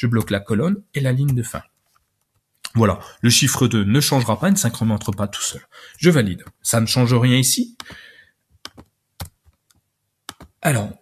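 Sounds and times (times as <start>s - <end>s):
computer keyboard keys clicking: 7.8s - 8.0s, 8.6s - 10.6s.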